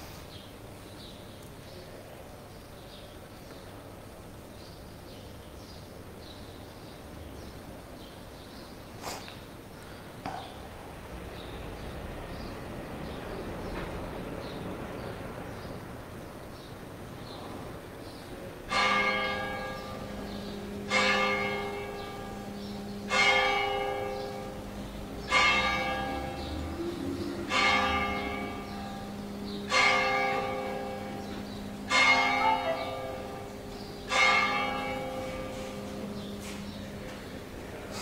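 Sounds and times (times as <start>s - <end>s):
bell tolling: 18.7s - 37.9s
steady low hum: 19.0s - 38.0s.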